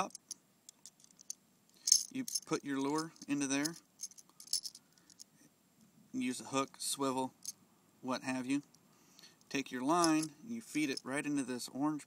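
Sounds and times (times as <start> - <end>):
metal hooks clinking on plastic: 0.0 - 5.3, 9.9 - 11.1.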